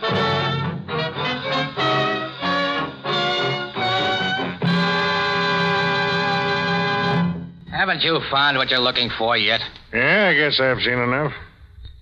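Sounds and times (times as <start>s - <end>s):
music bridge chords: 0.0s - 7.7s.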